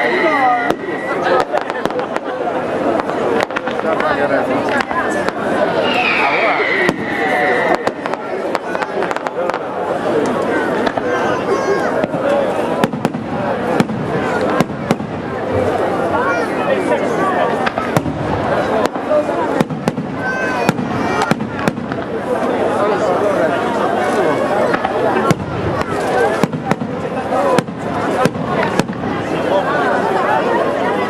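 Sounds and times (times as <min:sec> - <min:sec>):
fireworks bangs and crackles: 0:00.0 - 0:31.0.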